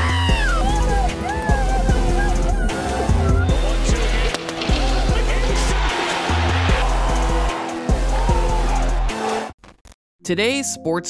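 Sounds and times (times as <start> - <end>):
background music with deep bass: 0.0 - 9.5.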